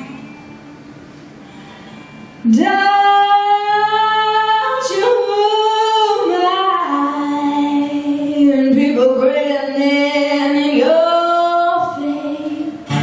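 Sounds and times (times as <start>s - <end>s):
woman singing long held notes: 2.4s - 12.9s.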